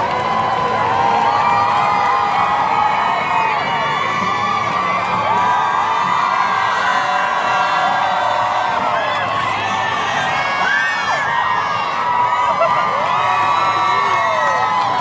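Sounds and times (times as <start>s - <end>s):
crowd cheering and screaming: 0.0s - 15.0s.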